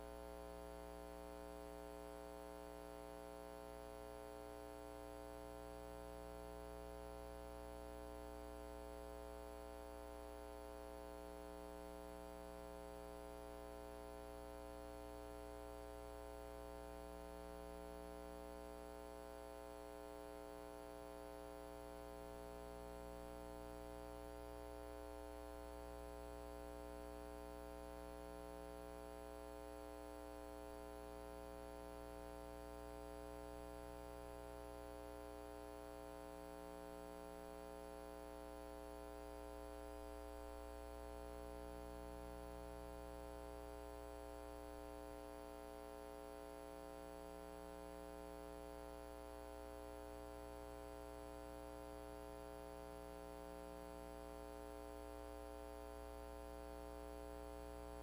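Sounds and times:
electrical mains hum: 0:00.0 - 0:58.0.

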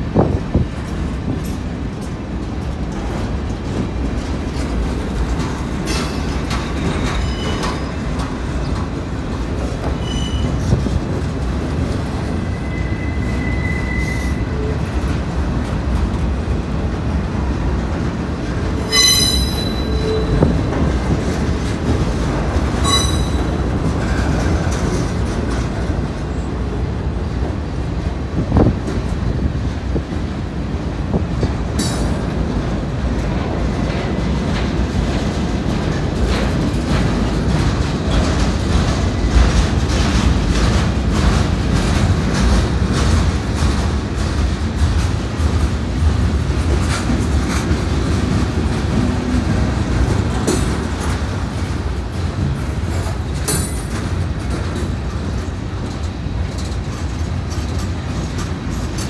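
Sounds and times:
train wheels rumbling on rail: 0:00.0 - 0:59.0
high-pitched wheel squeals: 0:10.0 - 0:10.6, 0:12.4 - 0:14.6, 0:18.8 - 0:20.5, 0:22.8 - 0:23.5.

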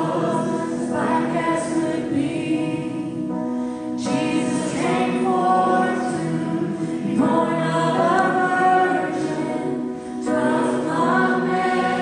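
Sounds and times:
group singing in harmony: 0:00.0 - 0:12.0.

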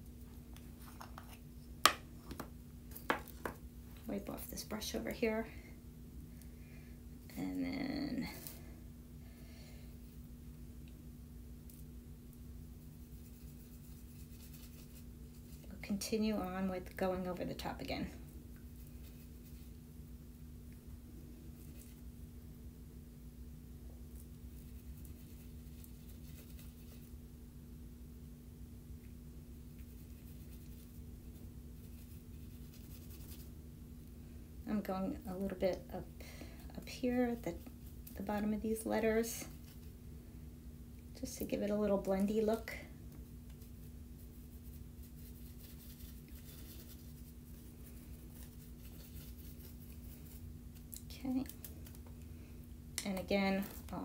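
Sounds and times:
steady low hum: 0:00.0 - 0:54.0
paintbrush scratching on cardstock: 0:13.0 - 0:15.8, 0:18.8 - 0:19.8, 0:24.5 - 0:27.1, 0:29.7 - 0:33.5, 0:43.5 - 0:50.6.

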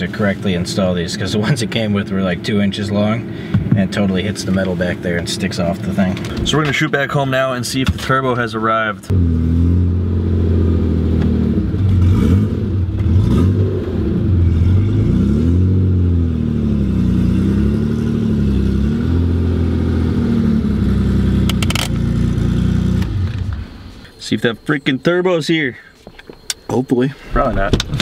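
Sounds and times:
car engine from inside cabin: 0:09.0 - 0:25.5.

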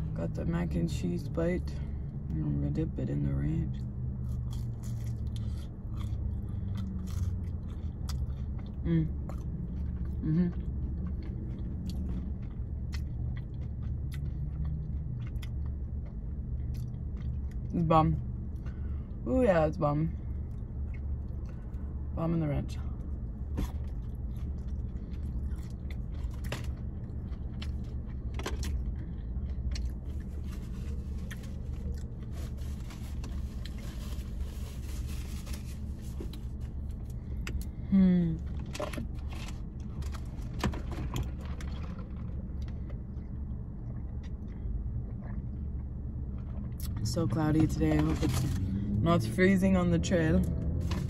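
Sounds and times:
low hum inside a car: 0:00.0 - 0:51.0
person chewing: 0:04.2 - 0:17.7, 0:23.5 - 0:35.0
person humming mm: 0:08.8 - 0:09.2, 0:10.2 - 0:10.6, 0:37.8 - 0:38.4
paper bag rustling: 0:30.1 - 0:36.6.

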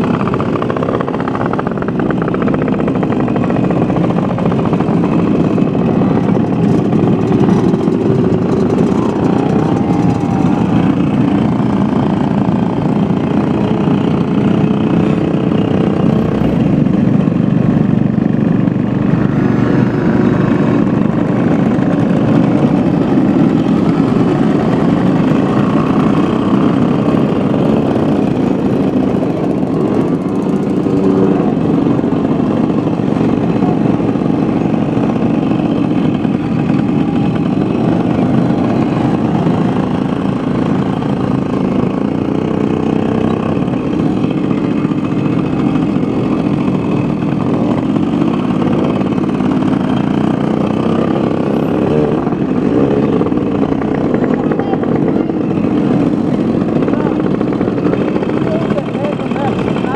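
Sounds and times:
moped engines idling: 0:00.0 - 0:59.9.

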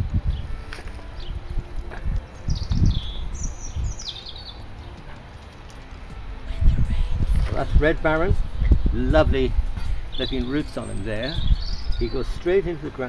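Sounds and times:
wind buffeting microphone: 0:00.0 - 0:05.2, 0:06.0 - 0:13.0
small bird chirping: 0:10.1 - 0:12.5.

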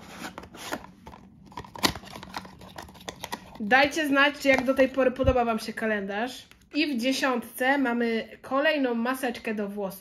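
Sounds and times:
card scraping and rustling: 0:00.0 - 0:03.6.

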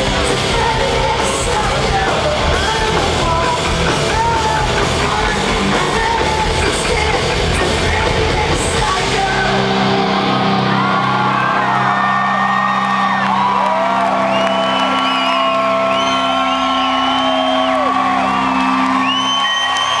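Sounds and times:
crowd whistling and whooping: 0:10.1 - 0:20.0.

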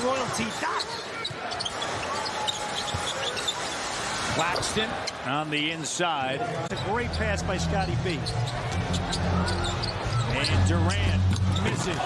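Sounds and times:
arena crowd noise: 0:00.0 - 0:12.0
sneaker squeaks: 0:00.1 - 0:04.1, 0:06.7 - 0:12.0.

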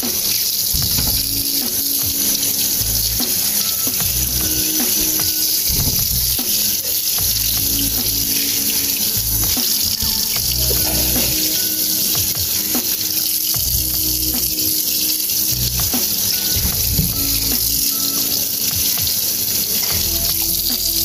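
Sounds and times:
tap water running into metal sink: 0:00.0 - 0:21.0.

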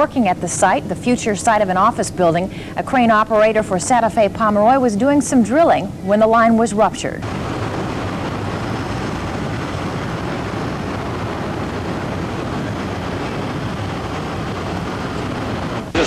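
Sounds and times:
gas escaping with rushing roar: 0:07.2 - 0:16.0.

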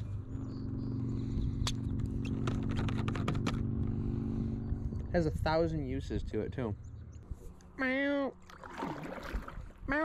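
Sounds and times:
steady low drone: 0:00.0 - 0:07.8.

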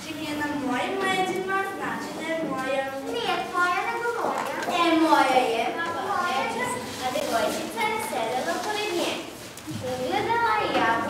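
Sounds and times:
child speaking: 0:00.0 - 0:11.0.

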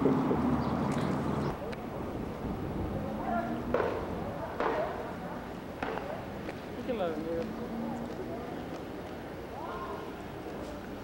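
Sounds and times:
people talking: 0:02.8 - 0:11.0.

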